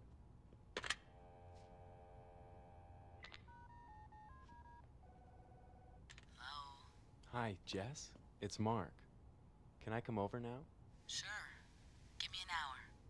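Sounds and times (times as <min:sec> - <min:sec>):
telephone ringing tone: 0:01.1 - 0:06.0
dial tone: 0:01.2 - 0:06.0.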